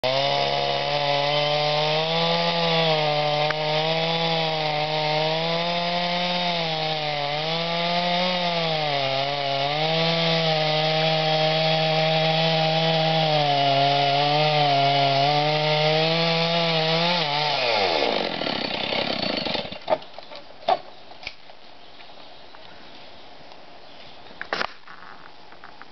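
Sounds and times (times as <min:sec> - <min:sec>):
chainsaw cutting tree trunk: 0:00.0 - 0:20.1.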